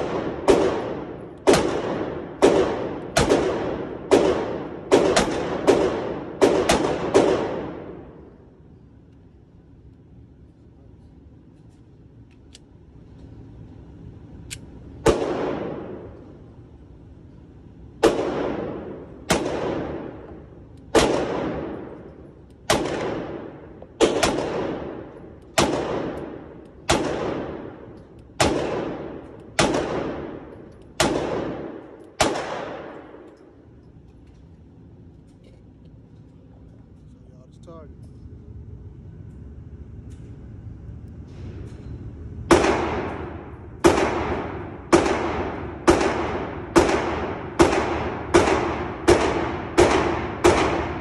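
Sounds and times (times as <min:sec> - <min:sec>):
pistol shots echoing indoors: 0:00.0 - 0:13.0, 0:13.8 - 0:35.8, 0:41.7 - 0:51.0.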